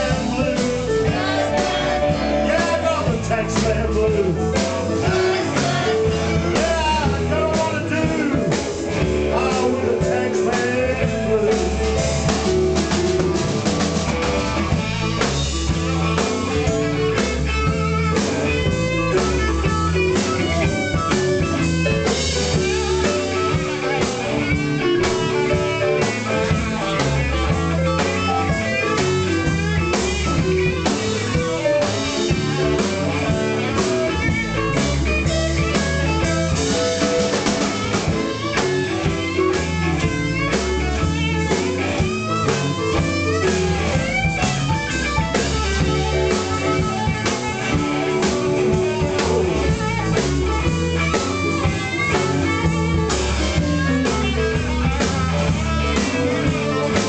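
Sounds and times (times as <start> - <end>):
harmonica bending notes: 0.0 - 57.0
live blues band playing: 0.0 - 57.0.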